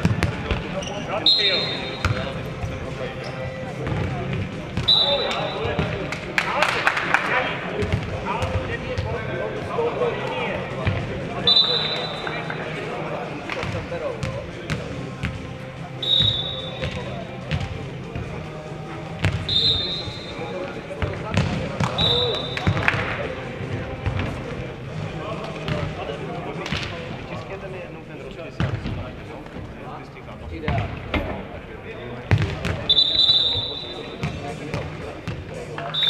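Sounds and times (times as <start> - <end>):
ball kicked and bouncing on court: 0.0 - 0.8, 21.0 - 22.0, 24.0 - 24.4, 32.3 - 32.9.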